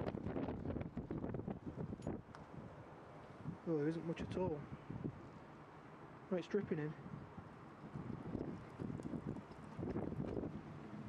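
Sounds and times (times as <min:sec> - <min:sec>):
wind buffeting microphone: 0:00.0 - 0:02.8, 0:03.4 - 0:05.3, 0:06.6 - 0:11.0.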